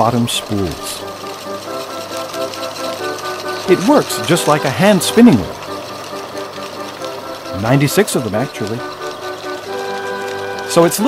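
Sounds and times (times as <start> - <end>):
background music: 0.0 - 11.0
spinning machine running: 0.0 - 11.0.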